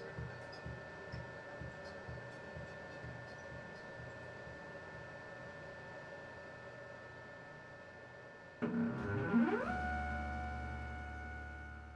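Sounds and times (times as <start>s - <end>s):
low electronic drone: 8.6s - 11.9s
electronic tones sliding upward: 8.7s - 11.9s.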